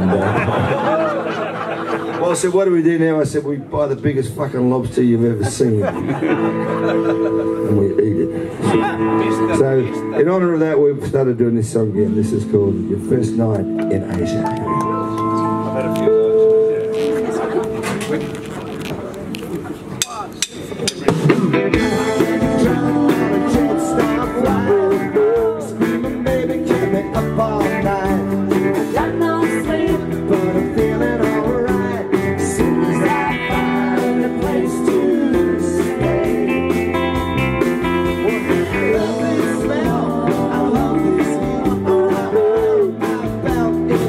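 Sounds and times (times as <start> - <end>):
live band playing: 0.0 - 44.0.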